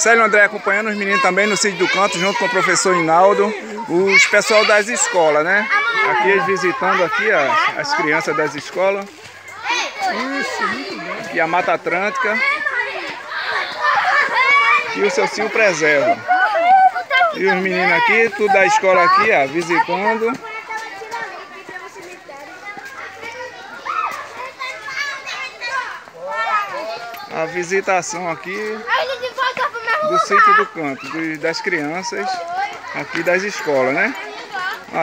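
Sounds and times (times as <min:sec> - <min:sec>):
children talking and calling out: 0:00.0 - 0:35.0.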